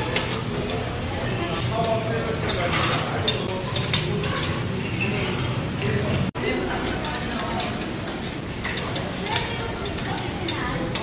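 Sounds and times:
meat sizzling on a grill: 0.0 - 5.3, 6.6 - 11.0
metal tongs clicking and scraping: 1.7 - 4.6, 6.8 - 11.0.

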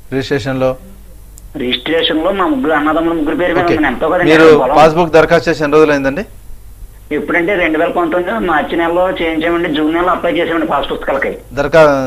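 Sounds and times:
person talking over telephone: 1.6 - 4.7.

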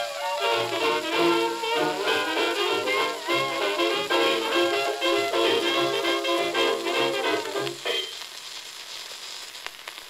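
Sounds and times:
record crackling hiss: 0.0 - 10.0
sharp record clicks: 0.6 - 10.0.

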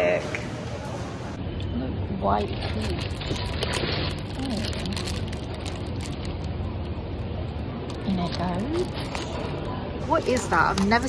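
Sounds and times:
plastic packaging crinkling: 2.5 - 6.7, 7.9 - 9.7.

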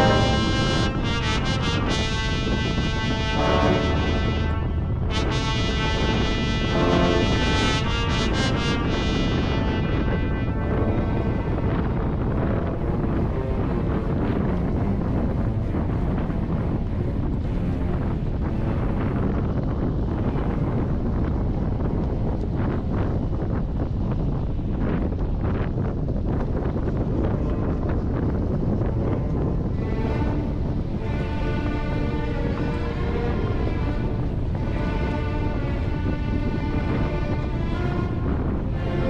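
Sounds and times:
background music: 0.0 - 19.3, 28.8 - 39.0
wind rushing over microphone: 0.0 - 39.0.

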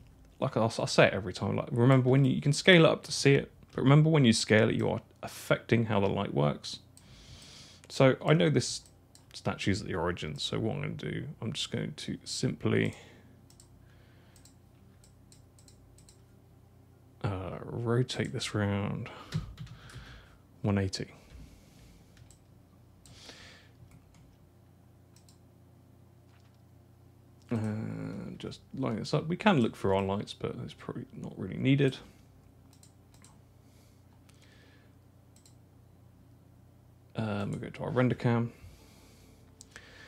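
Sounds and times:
low room hum: 0.0 - 40.0
computer mouse clicks: 12.8 - 13.7, 14.4 - 16.3, 22.2 - 23.2, 23.8 - 24.4, 25.1 - 25.4, 32.7 - 33.4, 35.4 - 35.6
keyboard clicks: 14.4 - 16.2, 25.2 - 25.4.

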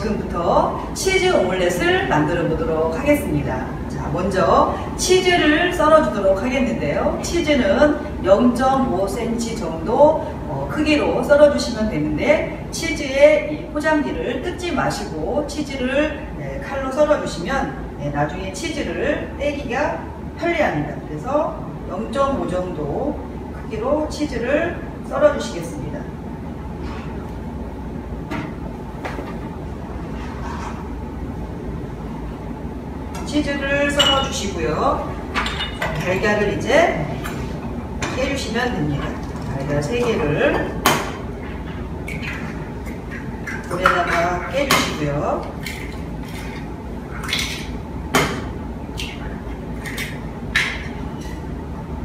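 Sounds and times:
low background hum: 0.0 - 52.0.

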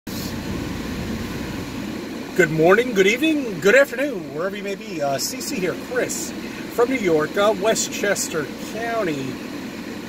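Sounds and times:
car rumble inside cabin: 0.1 - 10.0.

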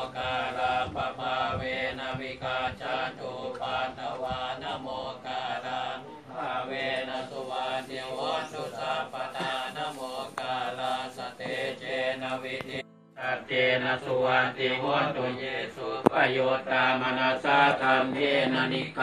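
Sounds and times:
monks chanting together: 0.0 - 19.0.

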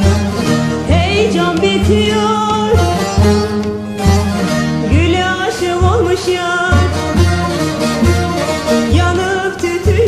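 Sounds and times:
long-necked lutes playing: 0.0 - 10.0.

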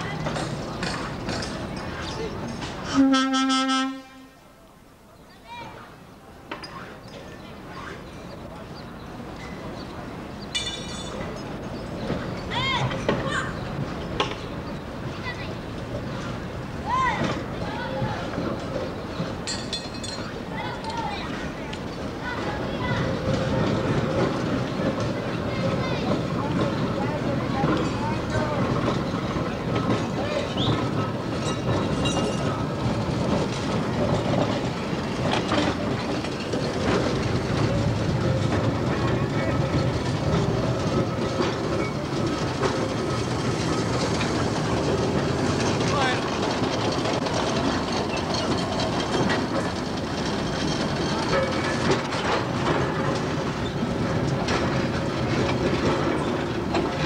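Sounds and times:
railcar wheels rumbling on rail: 0.0 - 57.0.

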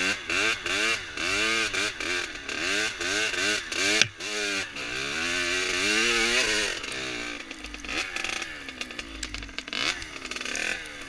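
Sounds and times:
dirt bike engine revving: 0.0 - 11.0
engine crackle: 0.0 - 11.0.

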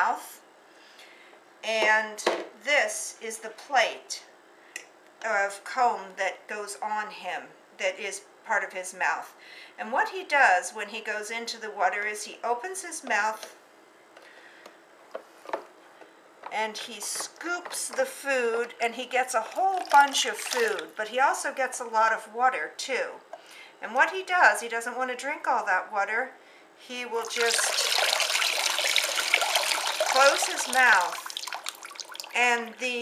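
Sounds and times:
water pouring through comb: 19.4 - 21.0, 27.2 - 32.4
water splashing into tub: 19.4 - 21.0, 27.2 - 32.4.

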